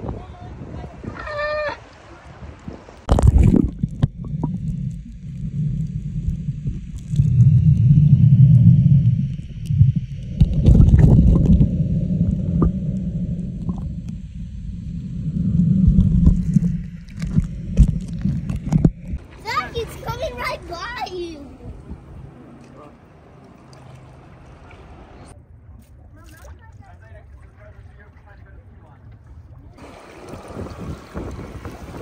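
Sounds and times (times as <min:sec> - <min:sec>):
underwater rushing water: 0:00.0 - 0:25.4, 0:26.4 - 0:32.0
camera plunging underwater: 0:02.6 - 0:19.3
bubbles and small clicks: 0:03.0 - 0:19.2.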